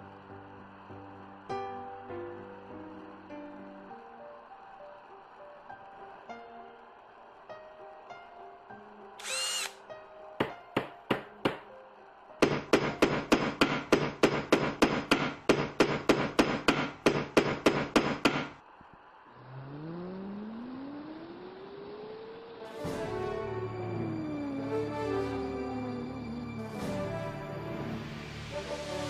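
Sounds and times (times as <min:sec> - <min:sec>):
tone sliding upward: 0:19.3 - 0:22.7.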